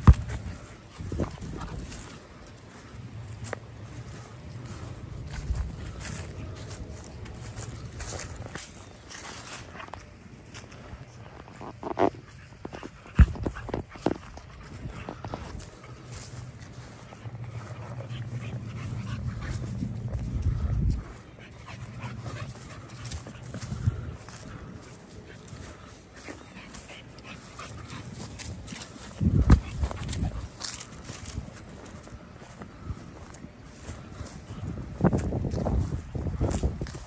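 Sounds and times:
dog playing: 11.4s - 31.4s
low rumble: 14.6s - 24.9s.

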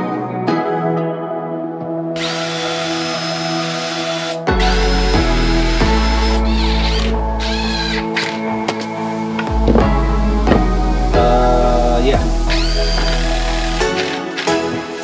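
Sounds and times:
background music: 0.0s - 15.0s
cordless drill driving into wood: 12.5s - 14.9s.

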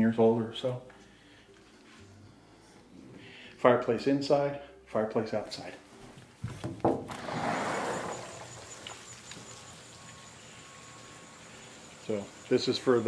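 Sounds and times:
faint high steady tone: 8.0s - 13.0s.

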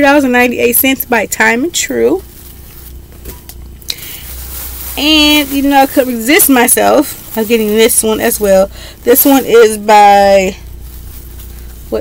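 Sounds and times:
clothing rustling: 1.9s - 12.0s.

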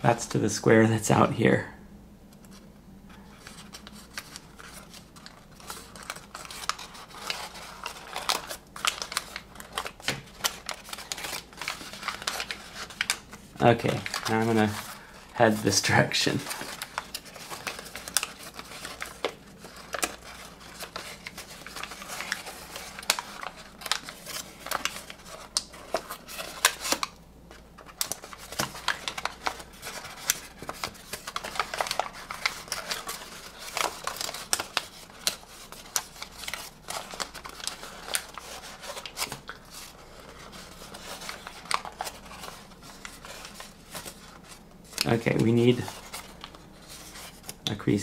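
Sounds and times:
paper crinkling: 2.4s - 48.0s.

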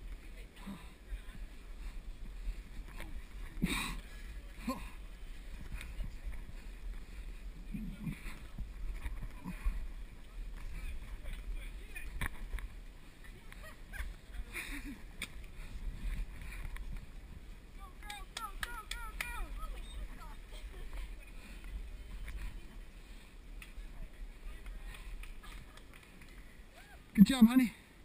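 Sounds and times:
wind rumble on microphone: 0.0s - 17.8s.

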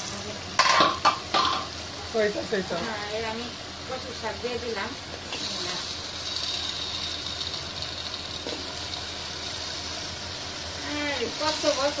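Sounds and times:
curry sizzling in a pot: 0.0s - 12.0s.

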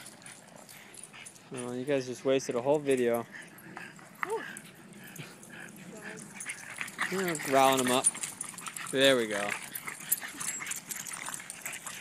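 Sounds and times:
dogs scuffling: 5.0s - 12.0s.

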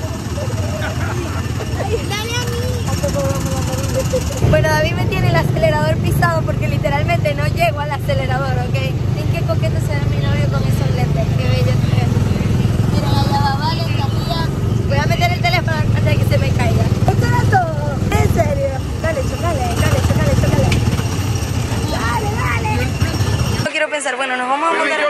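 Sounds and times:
people laughing: 0.0s - 2.7s, 3.6s - 4.4s
people talking: 0.0s - 20.9s, 21.7s - 25.0s
go-kart engine rumbling: 0.0s - 23.7s.

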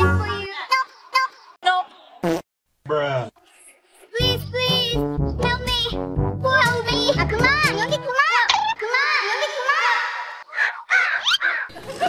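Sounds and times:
background music with a beat: 4.4s - 8.0s.

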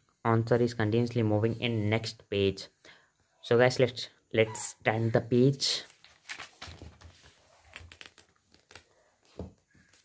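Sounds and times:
book pages turning: 5.8s - 10.0s.

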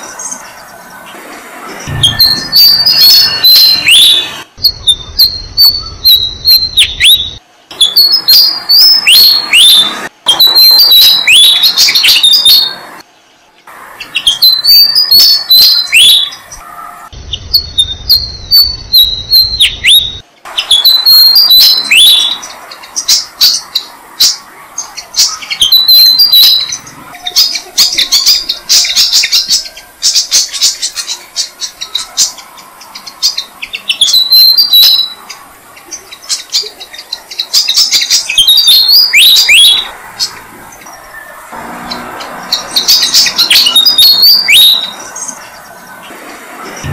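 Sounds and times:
birds chirping: 0.0s - 46.9s.

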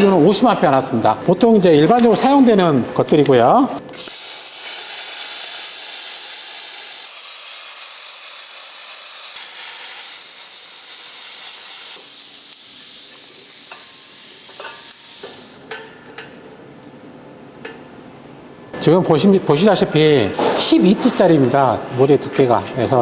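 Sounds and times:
plasma cutter hissing: 3.9s - 15.7s.

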